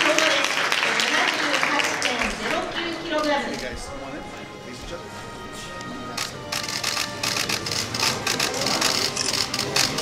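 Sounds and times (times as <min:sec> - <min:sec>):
camera shutters clicking rapidly: 0:06.2 - 0:10.0.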